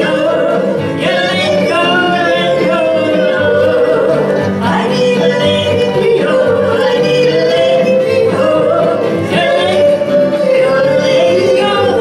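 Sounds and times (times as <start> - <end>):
acoustic guitars: 0.0 - 12.0
women singing country song: 0.0 - 12.0.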